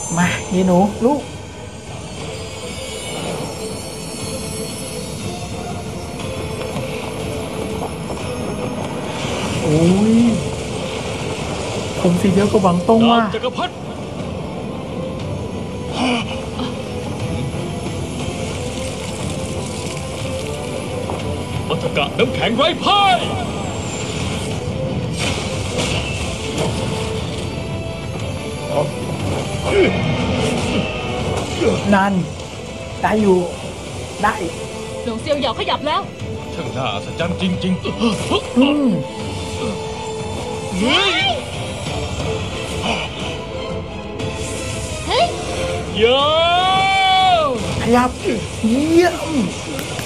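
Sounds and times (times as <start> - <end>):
fight soundtrack music: 0.0 - 50.0.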